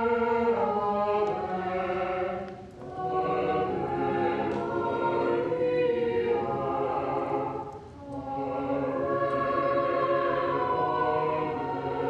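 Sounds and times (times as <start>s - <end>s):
choir singing long notes: 0.0s - 12.0s.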